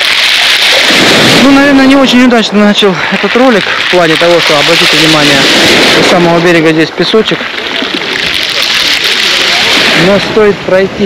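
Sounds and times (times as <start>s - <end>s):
small waves washing on sand: 0.0s - 11.0s.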